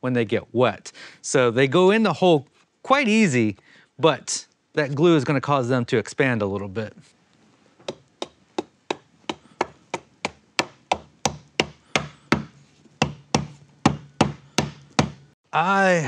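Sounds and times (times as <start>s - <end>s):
rubber mallet knocking wood: 7.8s - 15.3s.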